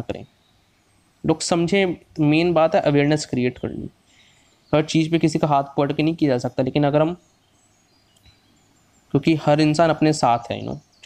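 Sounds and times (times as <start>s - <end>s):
person speaking: 0.0s - 0.3s, 1.2s - 4.0s, 4.7s - 7.2s, 9.1s - 10.9s
faint background noise: 0.0s - 11.0s
faint high-pitched chirps: 0.0s - 11.0s.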